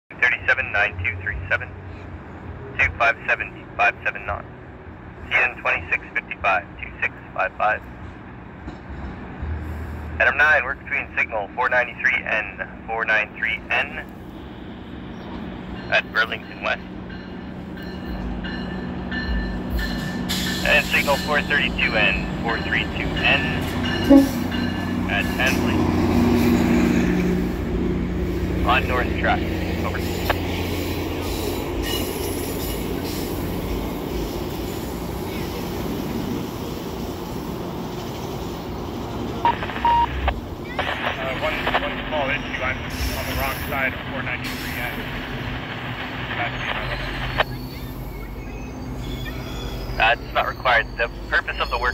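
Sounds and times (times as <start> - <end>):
train rumble: 0.1 - 51.9
train wheels on rails: 14.0 - 39.4.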